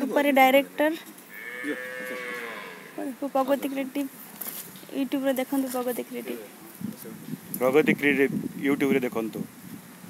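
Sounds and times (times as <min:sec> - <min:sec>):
cow mooing: 0:01.3 - 0:03.2.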